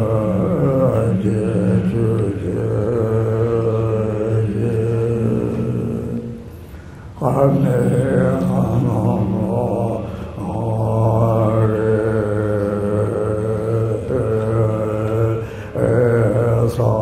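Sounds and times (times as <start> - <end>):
man chanting a prayer: 0.0 - 6.4, 7.2 - 17.0.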